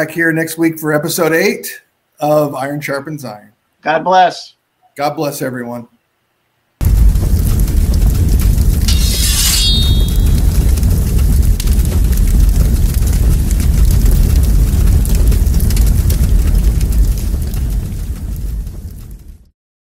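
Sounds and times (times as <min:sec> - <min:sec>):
deep explosion rumble: 0:06.8 - 0:08.9, 0:10.0 - 0:19.5
crackling whoosh: 0:06.8 - 0:19.5.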